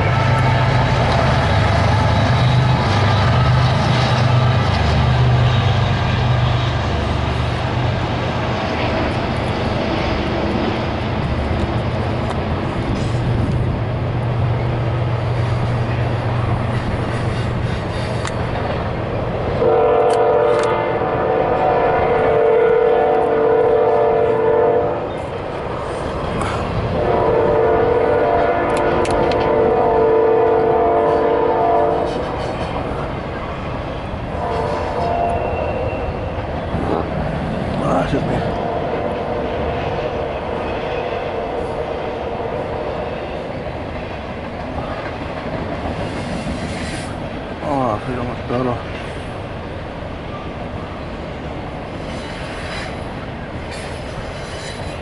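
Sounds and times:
locomotive horn blasts: 0:00.0 - 0:02.7, 0:19.6 - 0:25.1, 0:26.9 - 0:32.2, 0:34.4 - 0:36.1
diesel locomotive rumble: 0:00.0 - 0:55.0
freight train rolling over steel bridge: 0:00.0 - 0:55.0.

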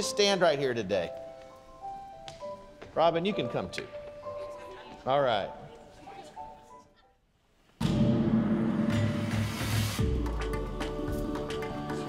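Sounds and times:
percussion hits: 0:07.8 - 0:12.0.

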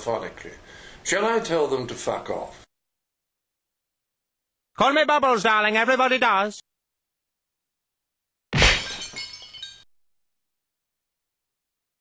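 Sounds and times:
glass shards tinkling: 0:08.8 - 0:09.9.

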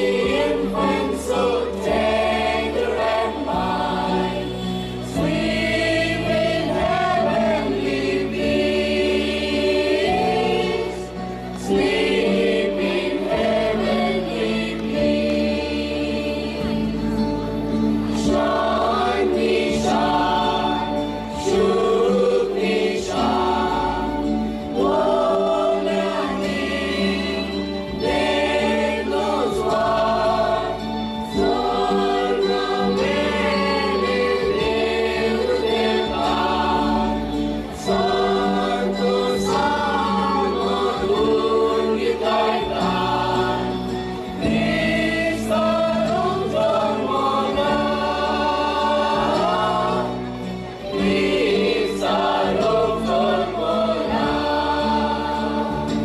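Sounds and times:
mixed choir singing a carol: 0:00.0 - 0:56.0.

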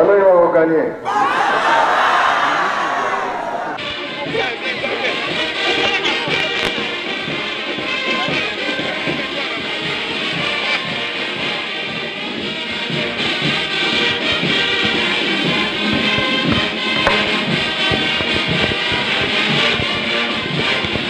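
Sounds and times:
brass band playing: 0:03.8 - 0:21.0
bass drum beating: 0:12.8 - 0:21.0.

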